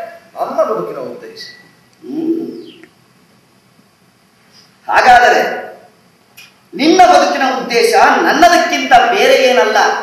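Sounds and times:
man humming: 2.0s - 2.7s.

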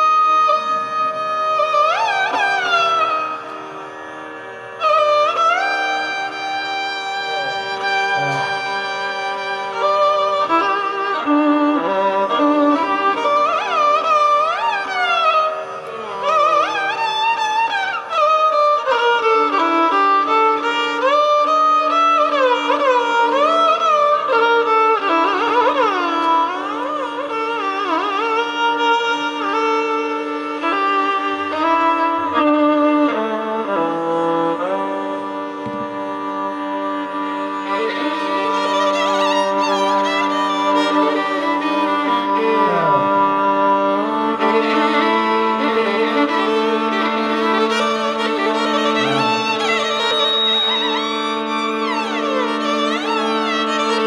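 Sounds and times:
violins playing melody: 0.0s - 54.0s.

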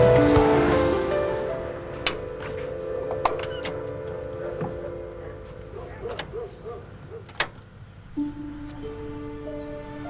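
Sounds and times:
sustained soundtrack chord: 0.0s - 5.8s.

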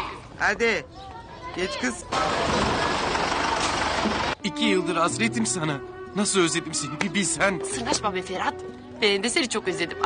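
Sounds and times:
minibus driving past: 2.1s - 4.5s.

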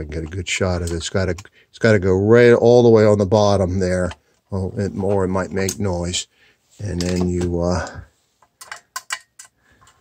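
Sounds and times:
screwdriver clicking on metal screws: 8.6s - 9.6s.

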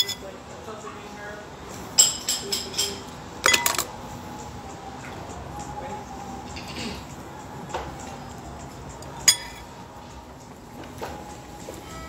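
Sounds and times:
tableware clinking: 0.0s - 0.2s, 2.0s - 3.9s, 9.3s - 9.7s.

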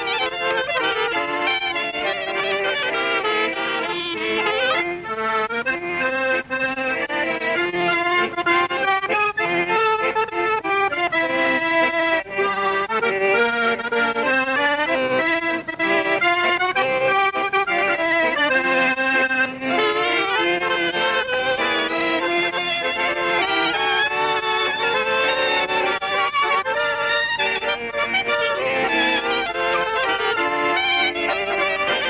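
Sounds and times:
accordion: 0.0s - 32.0s
clarinet: 0.0s - 32.0s.

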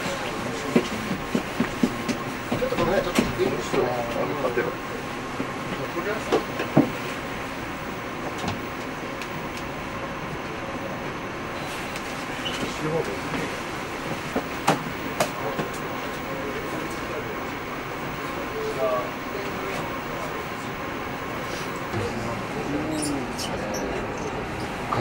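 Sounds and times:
faint voices: 0.0s - 6.8s, 12.2s - 25.0s
mechanical hum with high whine: 0.0s - 25.0s.

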